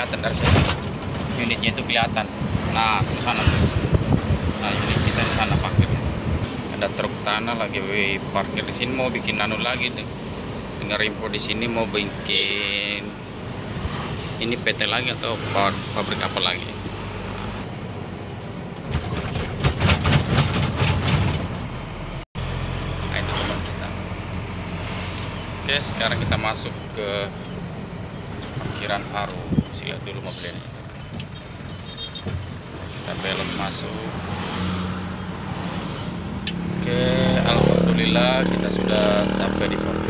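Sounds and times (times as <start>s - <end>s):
truck engine and road noise: 0.0s - 40.0s
low rumbling and rattling knocks: 18.8s - 21.9s.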